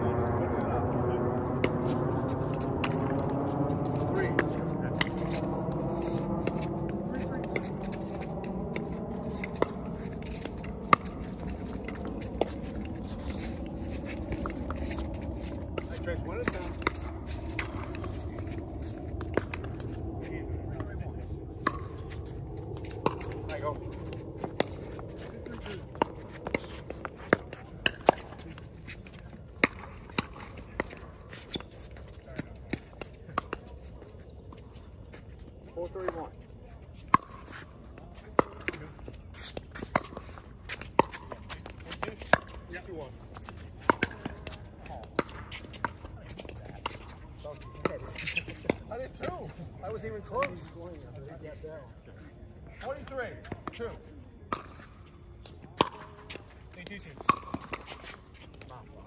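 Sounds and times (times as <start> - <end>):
low droning hum: 0.0 - 59.0.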